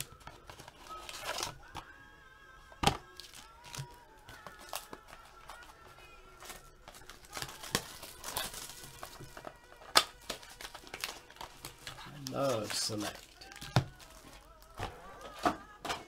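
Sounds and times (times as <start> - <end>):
foil card packs crinkling: 0.0 - 1.9, 2.8 - 16.0.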